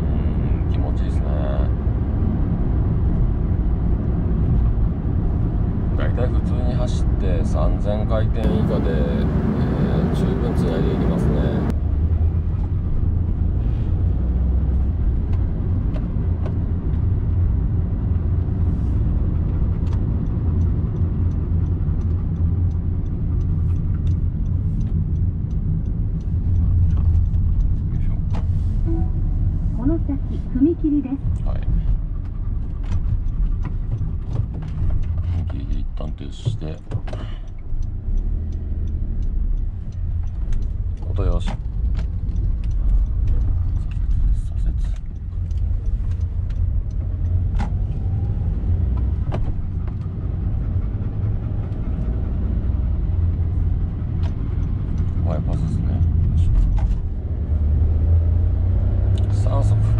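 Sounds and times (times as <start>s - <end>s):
van engine rumbling: 0.0s - 59.9s.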